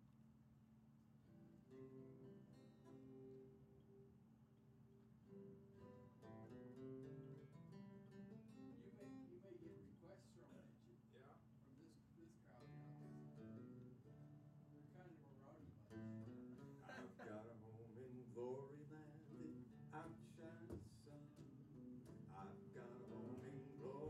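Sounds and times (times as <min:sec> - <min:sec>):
acoustic guitar strummed and picked: 0:01.4 - 0:04.1, 0:05.2 - 0:09.3, 0:12.6 - 0:15.0, 0:15.6 - 0:24.0.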